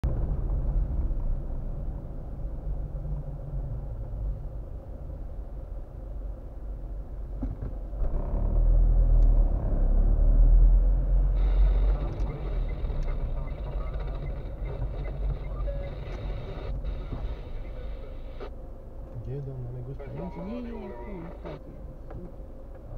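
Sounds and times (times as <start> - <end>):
car driving rumble from inside: 0.0 - 22.9
bus passing alongside: 7.9 - 19.0.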